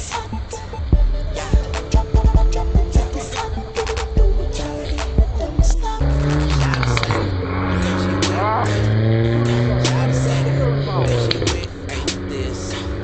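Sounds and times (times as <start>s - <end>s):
car engine accelerating: 0.0s - 13.0s
voices: 0.0s - 13.0s.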